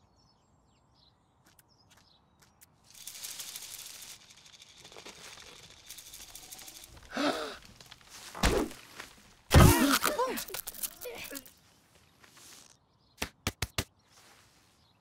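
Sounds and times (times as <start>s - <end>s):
soft rustling: 2.9s - 9.5s, 10.4s - 12.8s.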